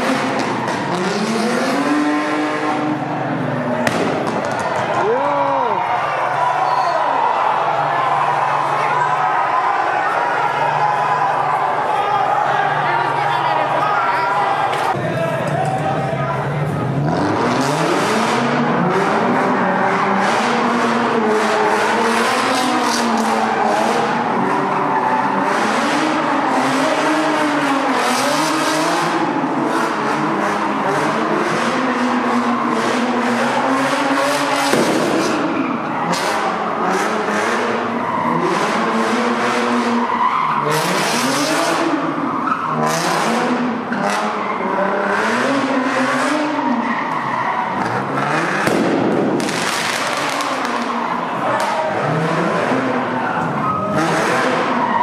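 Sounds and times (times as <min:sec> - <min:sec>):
car engine revving: 0:00.0 - 0:05.7, 0:16.0 - 0:55.0
tyres squealing on pavement: 0:39.6 - 0:42.8, 0:46.0 - 0:48.4, 0:52.8 - 0:55.0.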